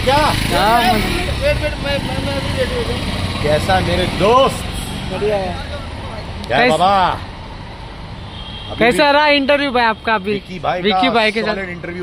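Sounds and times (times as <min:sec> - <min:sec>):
street traffic rumble: 0:00.0 - 0:12.0
voices talking and calling out: 0:00.0 - 0:12.0.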